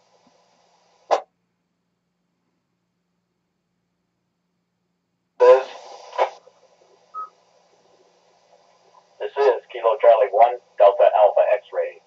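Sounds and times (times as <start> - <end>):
radio beep: 5.4 - 6.3, 7.1 - 7.4, 9.2 - 11.8
voices over radio speaker: 5.4 - 12.0.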